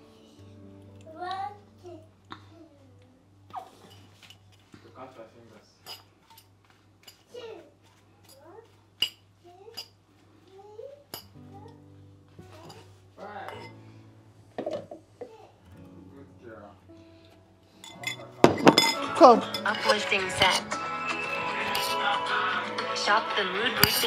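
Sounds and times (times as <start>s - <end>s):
background music: 0.0s - 2.4s, 11.4s - 24.0s
fork clinking on ceramic bowl: 17.8s - 20.7s, 23.8s - 24.0s.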